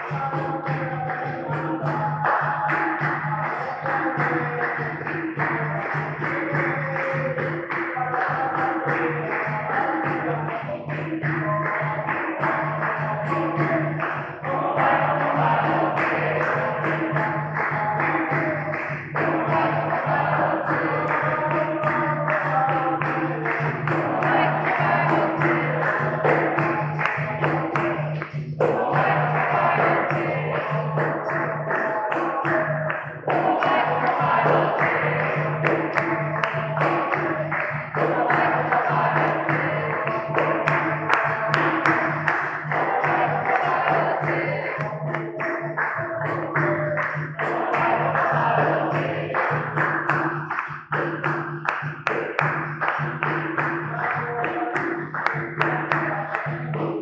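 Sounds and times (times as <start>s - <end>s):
atabaque drum: 0.0s - 57.0s
dense hand-clapping: 0.0s - 57.0s
group singing: 0.0s - 57.0s.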